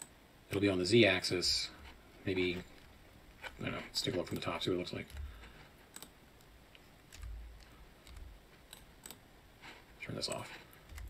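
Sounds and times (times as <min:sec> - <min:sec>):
keyboard and mouse clicks: 0:04.0 - 0:09.2, 0:10.3 - 0:11.0.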